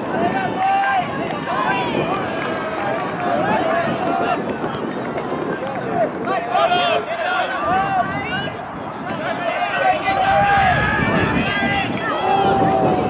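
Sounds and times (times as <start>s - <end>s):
voices shouting over one another: 0.0s - 4.9s, 5.5s - 13.0s.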